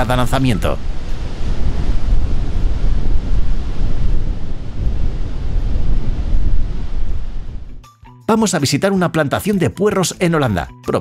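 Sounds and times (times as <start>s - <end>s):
water torrent rushing: 0.0s - 7.7s.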